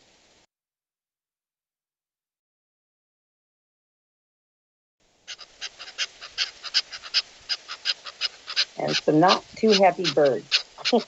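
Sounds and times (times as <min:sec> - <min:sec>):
small birds alarm calls: 0:05.2 - 0:11.0.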